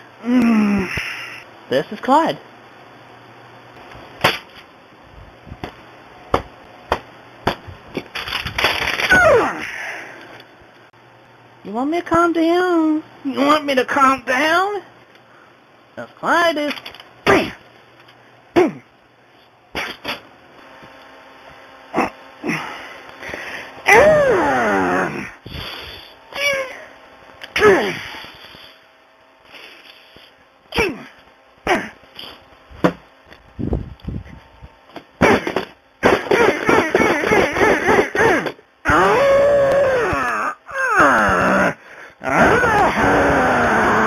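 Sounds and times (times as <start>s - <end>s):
man screaming: 23.9s - 25.3s, 38.2s - 44.0s
man shouting: 23.9s - 25.3s, 30.7s - 31.9s.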